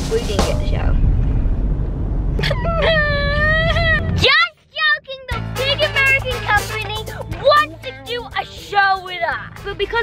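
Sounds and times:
girl wailing: 2.4s - 4.5s.

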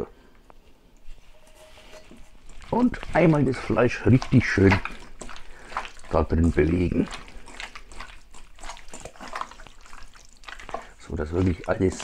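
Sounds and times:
wet squelching of meat in marinade: 1.7s - 12.0s.

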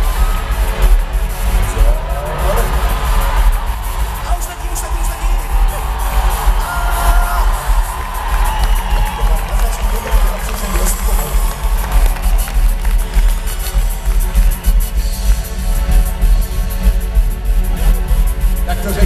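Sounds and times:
crowd cheering: 0.0s - 17.0s.

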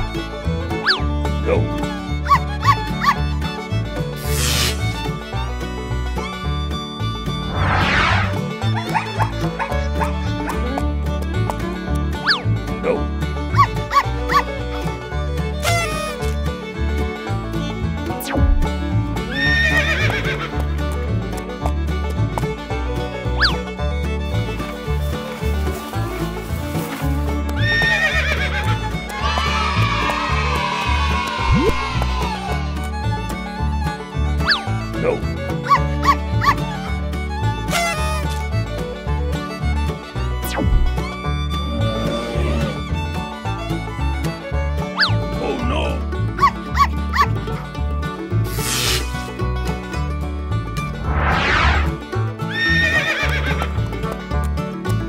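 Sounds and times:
horse whinny: 19.3s - 20.4s, 27.7s - 28.7s, 52.5s - 53.7s.

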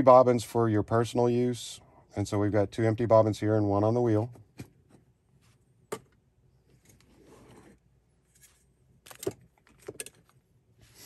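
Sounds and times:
soft rustle: 4.9s - 5.7s, 6.6s - 8.8s.

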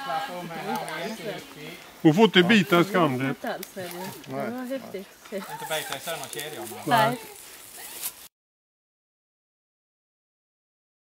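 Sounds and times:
outdoor background noise: 0.0s - 8.3s.

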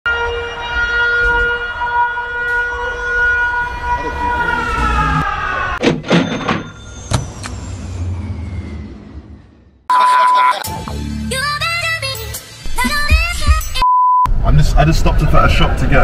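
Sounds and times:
low rumble: 7.2s - 9.9s.

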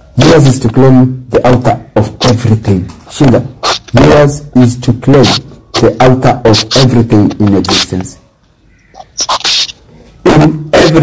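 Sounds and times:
small mouth clicks: 3.6s - 4.0s, 8.9s - 9.8s.

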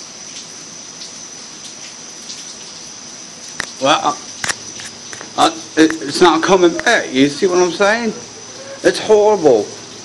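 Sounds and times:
steady hiss: 0.0s - 10.0s
man speaking: 5.4s - 9.8s.

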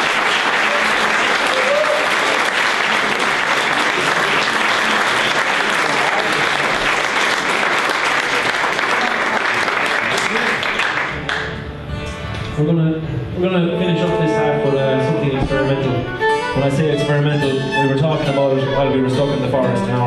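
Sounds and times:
audience applauding: 0.0s - 11.6s.

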